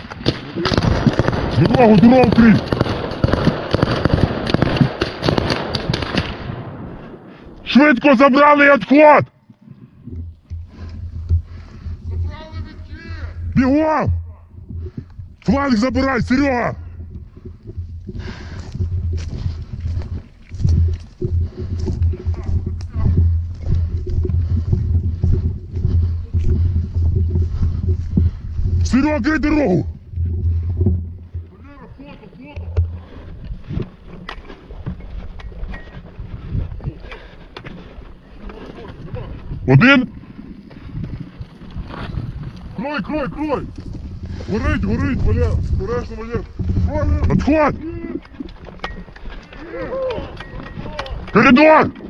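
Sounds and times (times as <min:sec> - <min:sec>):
rapid small-arms gunfire: 0:00.2 - 0:06.7
wind buffeting microphone: 0:09.5 - 0:52.0
footsteps running through grass: 0:18.1 - 0:29.0.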